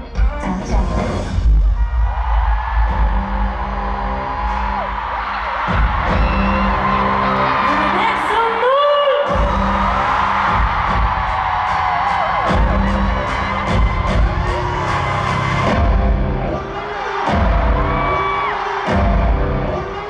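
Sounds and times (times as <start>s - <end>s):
heavy bass: 0.0s - 8.6s, 9.2s - 20.0s
steady percussion beat: 2.4s - 7.6s, 9.2s - 20.0s.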